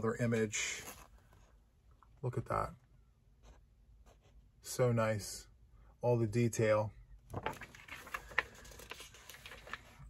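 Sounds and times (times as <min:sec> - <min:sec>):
paper crackles: 0:07.3 - 0:10.0
paper sheets rustling: 0:07.3 - 0:10.0.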